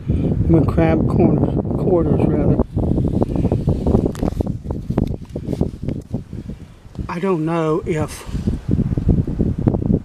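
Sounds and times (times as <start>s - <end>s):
camera handling crackles and thumps: 3.1s - 6.2s.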